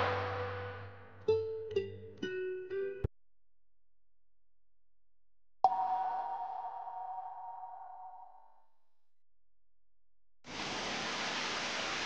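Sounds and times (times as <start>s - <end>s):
bell-like ping: 5.7s - 8.5s.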